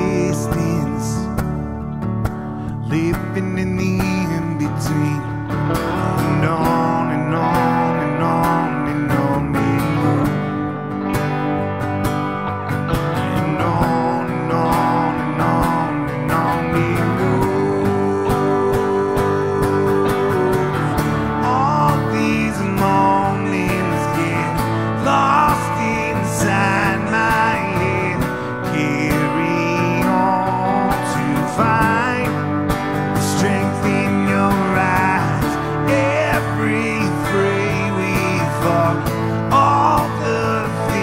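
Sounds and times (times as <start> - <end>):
electric guitar lead melody: 0.0 - 41.0
strummed acoustic guitar chords: 0.0 - 41.0.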